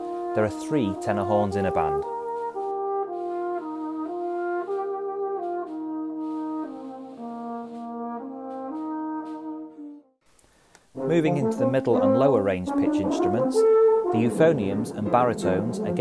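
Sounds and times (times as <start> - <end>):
brass ensemble playing held chords: 0.0 - 10.1, 11.0 - 16.0
tenor horn: 0.0 - 10.2, 11.0 - 16.0.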